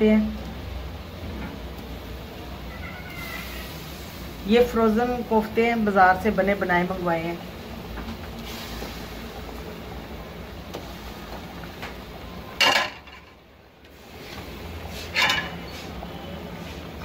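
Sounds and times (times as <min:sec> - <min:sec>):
low kitchen background noise: 0:00.0 - 0:17.0
metal cookware clattering: 0:12.6 - 0:13.4, 0:15.0 - 0:15.7.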